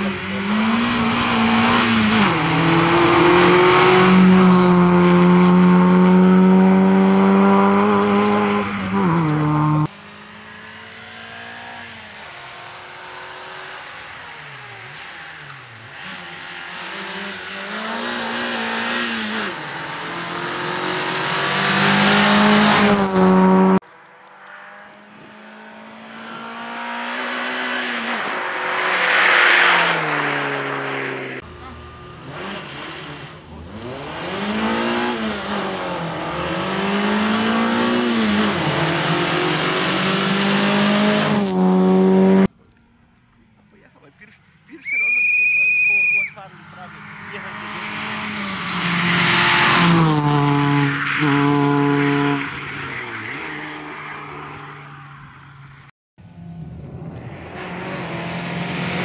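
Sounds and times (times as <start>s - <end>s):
rally car engine revving: 0.0s - 23.8s, 24.4s - 42.5s, 46.4s - 59.0s.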